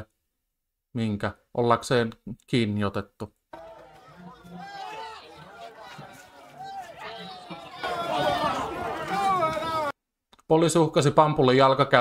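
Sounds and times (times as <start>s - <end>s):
people talking and calling out: 3.6s - 9.9s
street noise: 3.6s - 9.9s.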